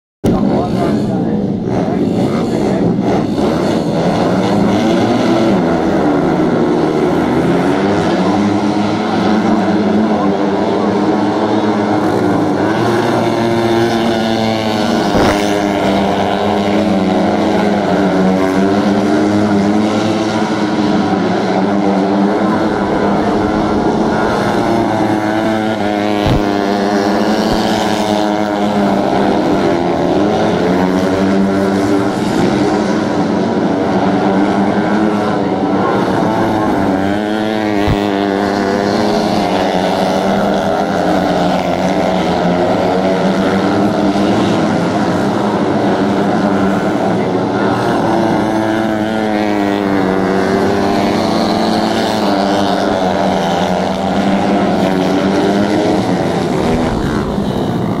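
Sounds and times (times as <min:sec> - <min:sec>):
dirt bike engines droning: 0:00.2 - 0:58.0.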